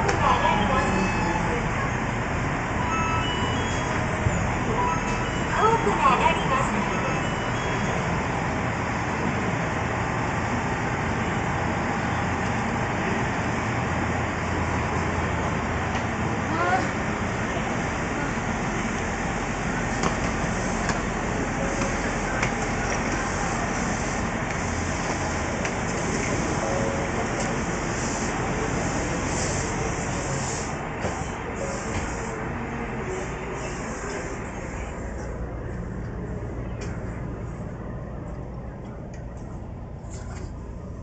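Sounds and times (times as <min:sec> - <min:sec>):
people's voices: 0:00.0 - 0:03.3, 0:03.9 - 0:07.9, 0:16.4 - 0:40.8
train low rumble and hum: 0:00.0 - 0:41.0.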